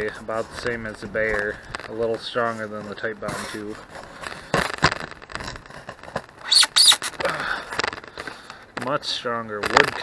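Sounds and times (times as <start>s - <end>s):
glued fabric peeling off foam: 2.4s - 8.0s
sharp fabric rips: 6.4s - 7.2s.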